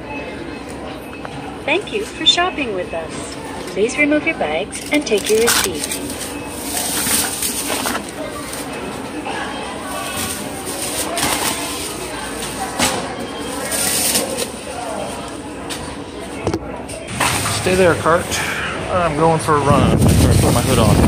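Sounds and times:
indistinct chatter of shoppers: 0.0 - 21.0
grocery bags rustling and knocking: 4.8 - 15.9, 20.0 - 21.0.

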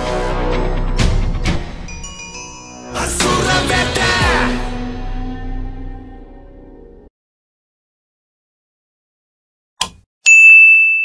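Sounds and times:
bright bell ding: 1.9 - 3.1, 10.3 - 11.0
short click: 9.8 - 10.0.

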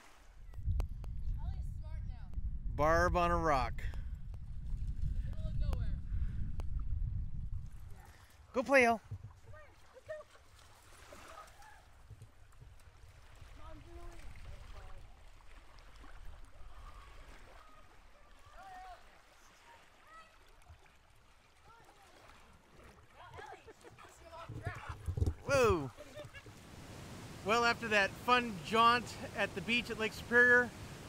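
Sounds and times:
wind rumbling on microphone: 0.3 - 9.7, 24.2 - 27.5.

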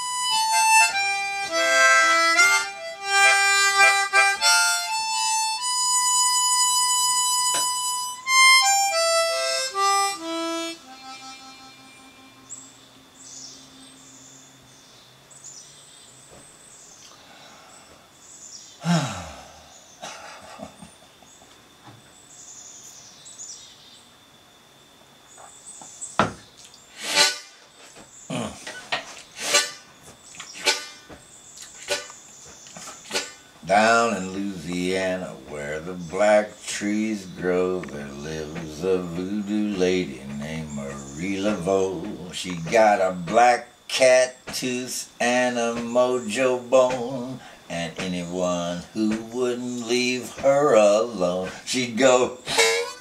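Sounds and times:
harmonica long high note: 0.0 - 14.5, 26.9 - 27.6, 29.3 - 29.9, 30.6 - 31.2, 31.8 - 32.2, 33.0 - 47.5, 48.4 - 53.0
faint bird chirps: 10.9 - 24.2
breathy rush: 18.8 - 19.8
low vocal note: 28.3 - 28.6.

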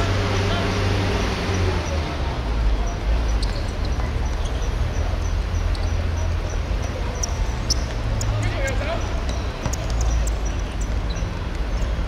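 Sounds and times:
ball kicked and bouncing: 7.7 - 11.7.

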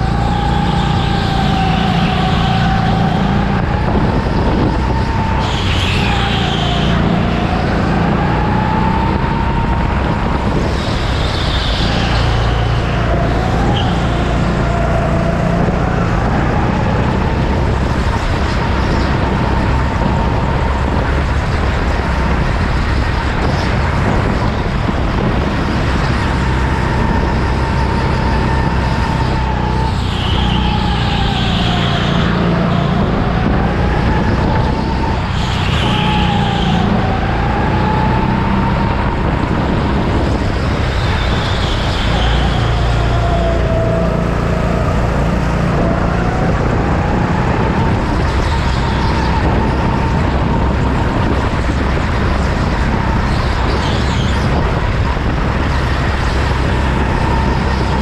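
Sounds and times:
go-kart rumble and whine: 0.0 - 58.0.

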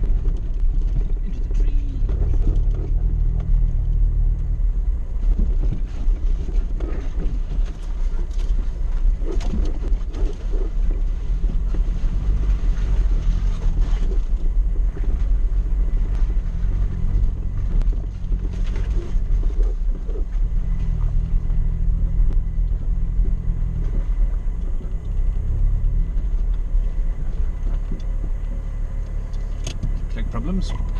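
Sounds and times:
car engine low drone: 0.0 - 30.9.

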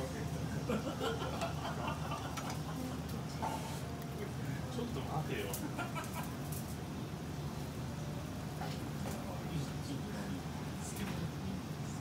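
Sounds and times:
low kitchen hum: 0.0 - 12.0.

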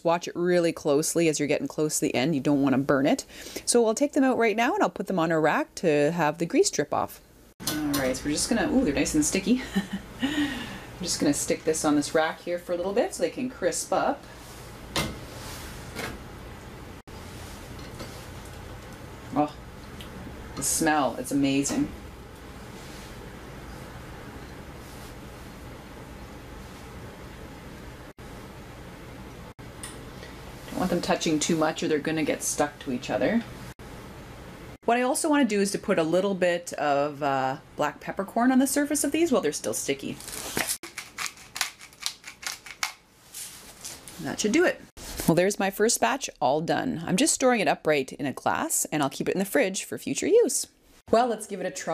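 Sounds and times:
low room hum: 0.0 - 51.9
pepper grinder crunching peppercorns: 40.2 - 43.0.

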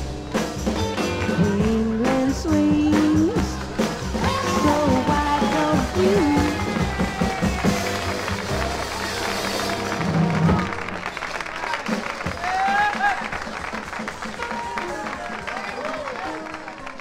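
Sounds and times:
pop-soul song from vinyl: 0.4 - 8.3
crowd voices: 1.0 - 17.0
scattered applause: 2.9 - 17.0.

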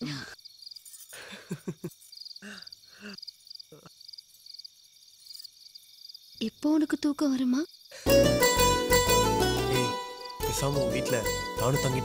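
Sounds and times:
crickets chirping: 0.0 - 12.0
person laughing: 1.2 - 3.2.

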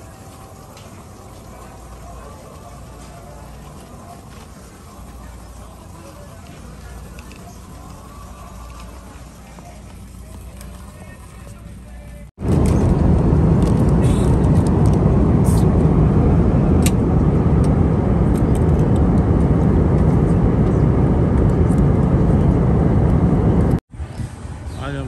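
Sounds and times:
airliner engines and rushing air: 0.0 - 25.0.

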